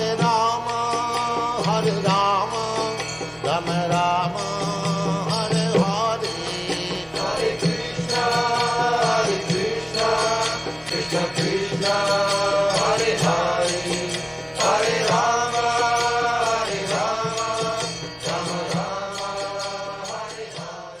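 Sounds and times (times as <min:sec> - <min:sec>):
regular percussive beat: 0:00.0 - 0:21.0
voices chanting long notes: 0:06.3 - 0:21.0.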